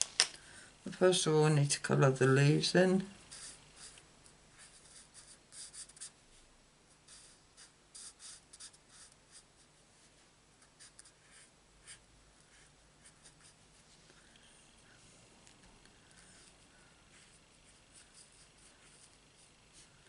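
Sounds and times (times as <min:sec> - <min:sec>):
marker scratching on cardstock: 0:03.3 - 0:04.0, 0:07.1 - 0:09.5.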